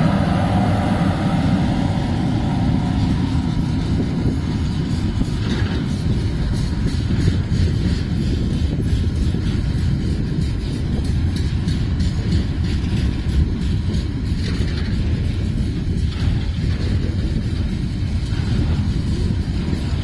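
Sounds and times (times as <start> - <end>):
freight train rumble: 0.0 - 20.0
wheel clicks over rail joints: 4.1 - 20.0.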